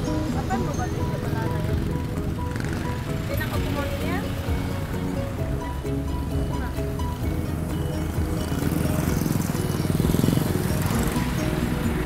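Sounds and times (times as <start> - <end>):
background music: 0.0 - 12.0
vehicle engine passing: 0.0 - 12.0.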